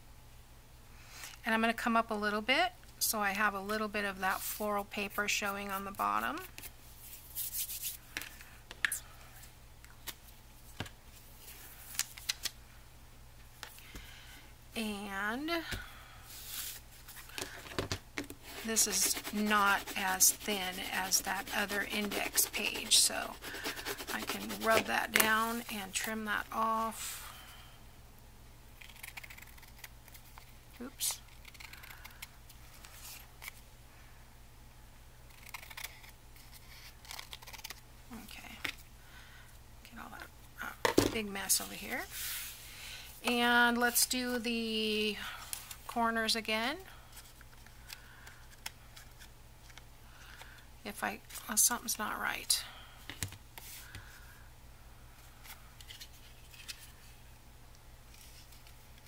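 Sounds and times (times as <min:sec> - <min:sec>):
low steady hum: 0:00.0 - 0:59.0
soft paper scrapes: 0:18.4 - 0:25.8, 0:41.5 - 0:42.7.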